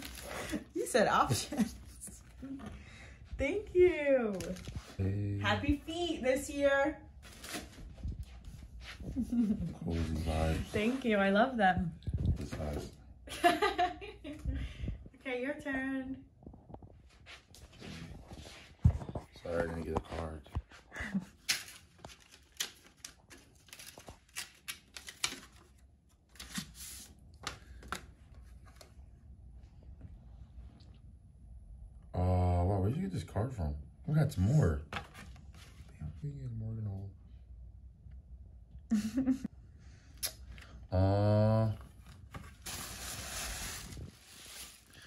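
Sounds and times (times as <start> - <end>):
paper rustling and crinkling: 4.3 - 5.0, 21.4 - 28.9, 41.9 - 45.0.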